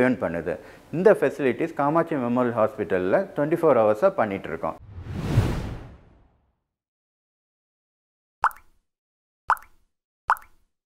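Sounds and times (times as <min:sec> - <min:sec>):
whoosh sound effect: 0:04.8 - 0:06.4.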